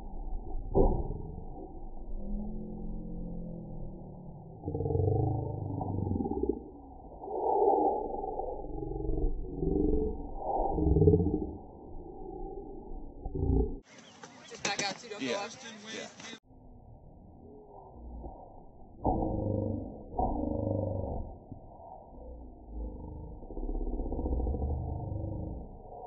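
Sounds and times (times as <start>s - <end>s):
slowed-down deep growls: 0.0s - 13.9s, 16.4s - 26.0s.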